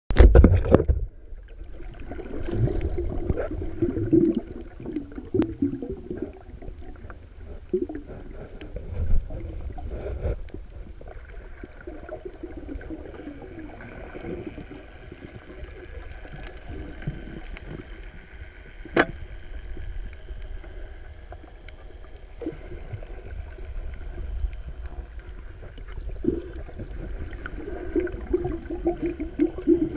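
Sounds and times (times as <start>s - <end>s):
muffled underwater rumble: 0.1s - 29.9s
underwater clicks: 15.9s - 29.8s.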